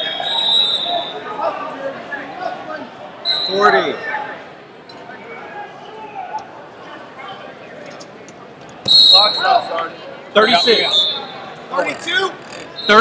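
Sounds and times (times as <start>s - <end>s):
referee's whistle blast: 0.0s - 1.3s, 8.9s - 9.7s, 10.6s - 11.4s
murmur of large hall: 0.0s - 13.0s.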